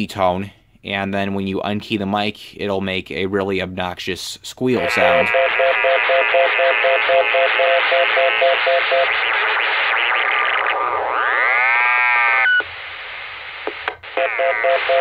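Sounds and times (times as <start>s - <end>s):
radio static hiss: 4.7s - 15.0s
pulsing radio busy tone: 4.8s - 12.6s, 14.1s - 15.0s.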